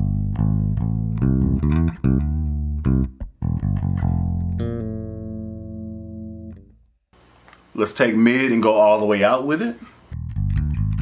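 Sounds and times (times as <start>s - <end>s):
electric bass played fingerstyle: 0.0s - 7.0s, 10.1s - 11.0s.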